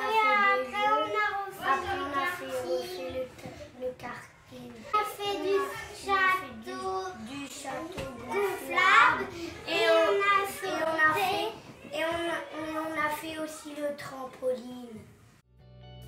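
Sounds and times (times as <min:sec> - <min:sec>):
children singing: 0:05.0 - 0:12.6.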